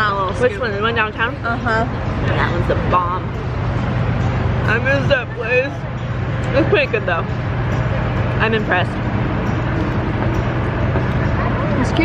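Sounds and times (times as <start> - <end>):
street traffic hum: 0.0 - 12.0.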